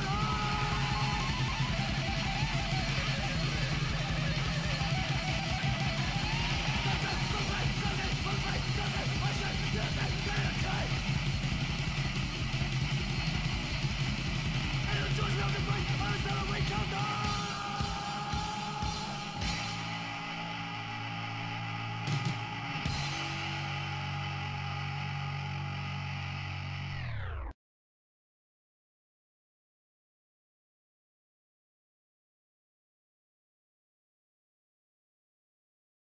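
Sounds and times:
punk band playing: 0:00.0 - 0:24.2
distorted guitar and bass chord: 0:00.0 - 0:27.6.

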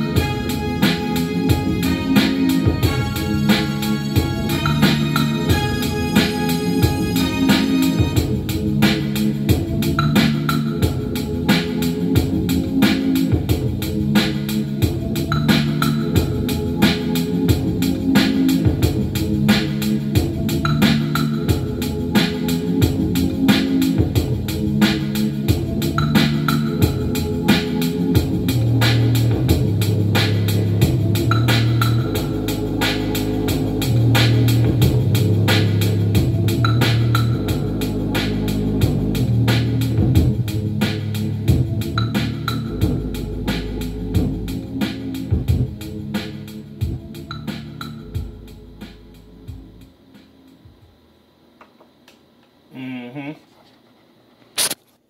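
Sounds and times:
bass line: 0:00.0 - 0:49.9
electronic keyboard chords: 0:00.0 - 0:50.9
steady drum beat: 0:00.0 - 0:51.0.

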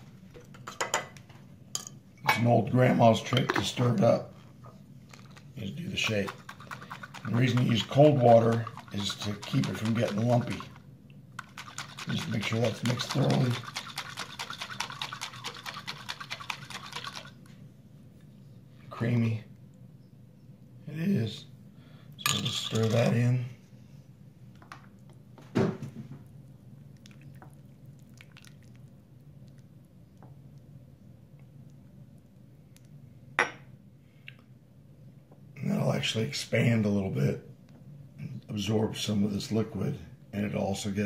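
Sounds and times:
low steady hum: 0:00.0 - 0:41.0
liquid shaken in a jar: 0:05.0 - 0:17.5, 0:22.3 - 0:23.2
wooden spoon stirring stew: 0:05.2 - 0:10.8.

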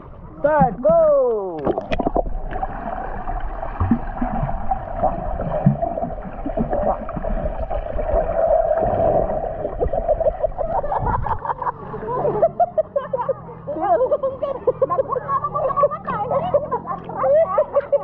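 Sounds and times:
bubbling and splashing: 0:00.7 - 0:11.5
underwater hiss and rumble: 0:01.6 - 0:11.9
voices: 0:10.8 - 0:18.0.

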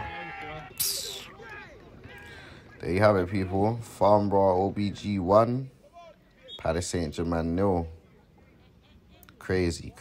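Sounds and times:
distant shouting voices: 0:00.0 - 0:04.0, 0:05.7 - 0:06.8.

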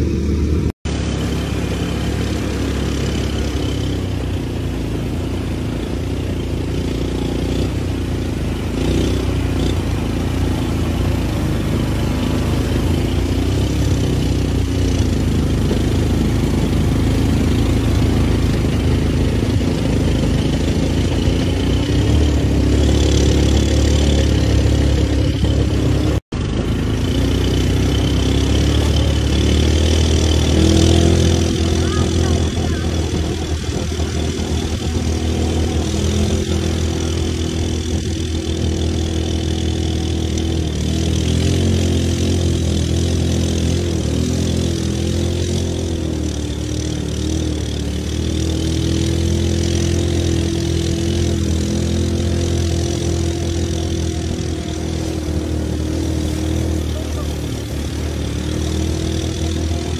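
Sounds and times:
quad bike engines running: 0:00.0 - 0:59.9.

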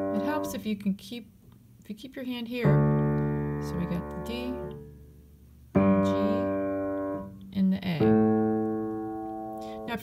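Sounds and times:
piano chords: 0:00.0 - 0:00.7, 0:02.6 - 0:10.0.

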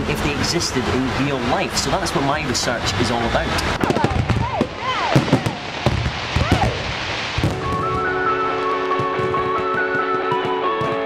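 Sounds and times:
fireworks bangs and crackles: 0:01.7 - 0:11.0
music with sustained notes: 0:07.4 - 0:11.0.

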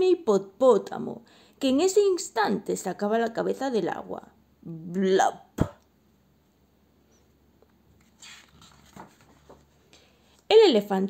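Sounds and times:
paper page turning and smoothing: 0:07.9 - 0:09.8.

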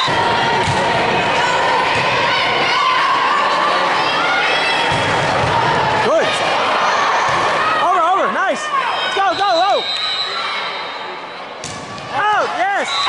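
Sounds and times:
crowd noise echoing in gym: 0:00.0 - 0:13.0
volleyball struck with a slap: 0:00.6 - 0:00.9, 0:11.6 - 0:12.1
people shouting calls: 0:06.1 - 0:11.0.

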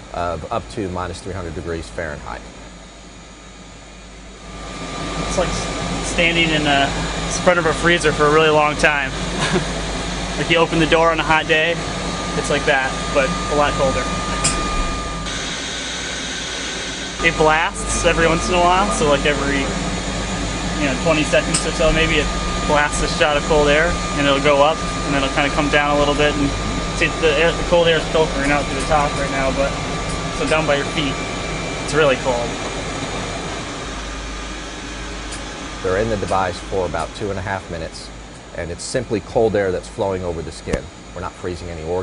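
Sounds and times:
low hum: 0:00.0 - 0:41.4
chilled air hissing: 0:00.0 - 0:42.0.

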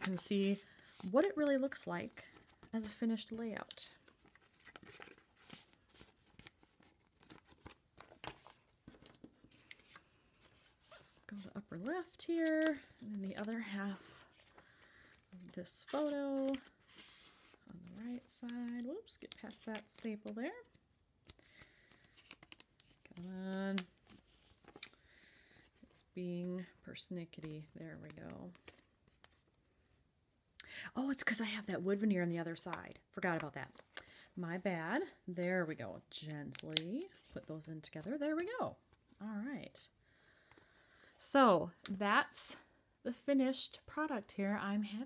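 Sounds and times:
plastic sleeve crinkling: 0:02.2 - 0:20.4.

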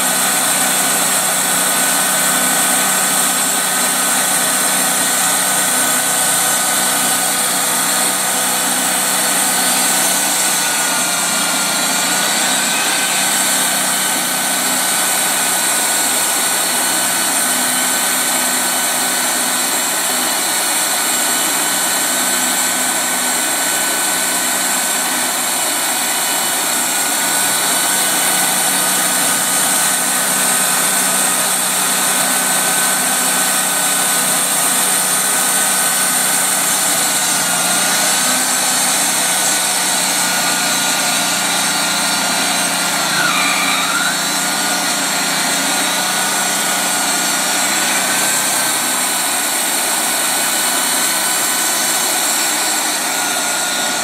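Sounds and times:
sawmill cutting log: 0:00.0 - 0:54.0.

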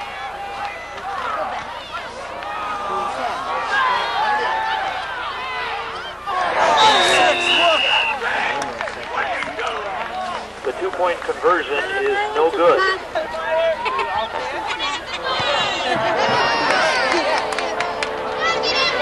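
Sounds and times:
spectators calling out: 0:00.0 - 0:19.0
steady high whistle: 0:06.6 - 0:08.2.

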